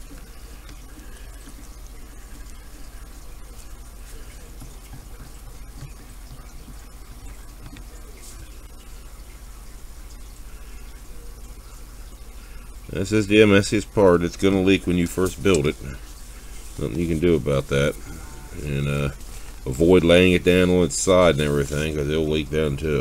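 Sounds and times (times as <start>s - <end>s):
low hum and hiss: 0.0s - 23.0s.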